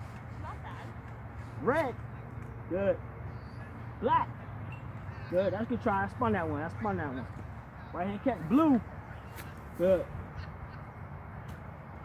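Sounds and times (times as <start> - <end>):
faint outdoor background noise: 0.0 - 12.0.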